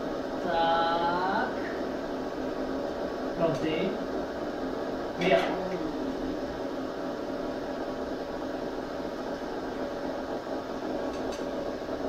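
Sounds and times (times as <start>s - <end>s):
faint hum: 0.0s - 12.0s
steady hiss: 0.0s - 12.0s.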